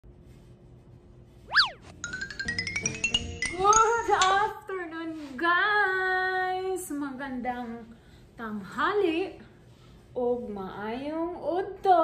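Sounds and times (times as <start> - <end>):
cartoon boing sound effect: 1.5 - 1.9.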